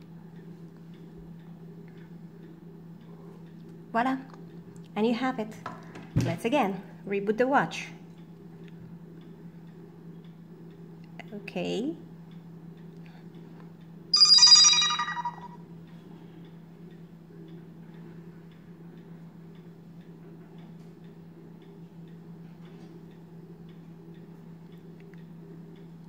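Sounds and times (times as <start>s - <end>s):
smartwatch electronic chime: 14.2s - 15.5s.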